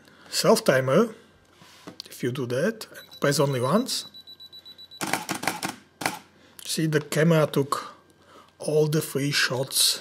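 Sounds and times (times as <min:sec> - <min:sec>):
camera self-timer beeping: 0:03.0 - 0:06.2
camera shutter clicks: 0:05.0 - 0:06.3.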